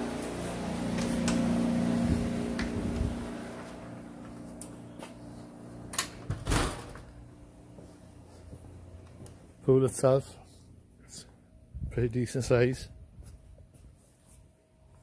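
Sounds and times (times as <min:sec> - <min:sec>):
low mechanical hum: 0:00.0 - 0:15.0.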